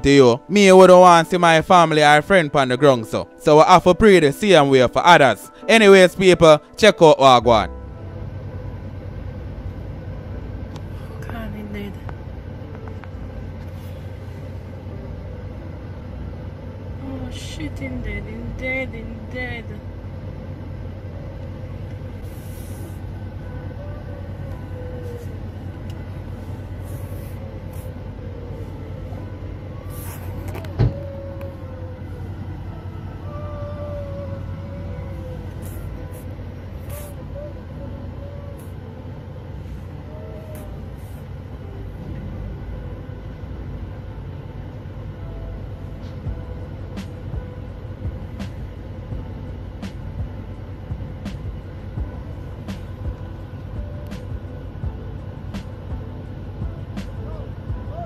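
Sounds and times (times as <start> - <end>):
vehicle rumble from inside: 6.6 - 58.0.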